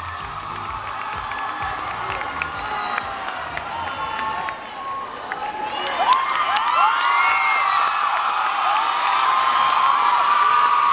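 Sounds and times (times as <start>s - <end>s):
audience cheering and screaming: 0.0s - 10.9s.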